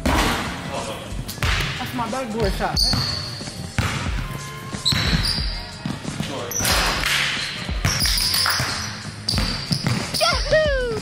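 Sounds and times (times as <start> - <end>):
basketball bouncing on wooden floor: 2.4 - 3.2, 4.9 - 6.2, 7.8 - 11.0.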